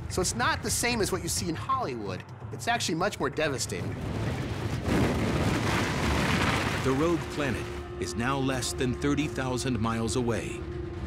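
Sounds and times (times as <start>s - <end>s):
rumbling roar of debris: 3.8s - 8.0s.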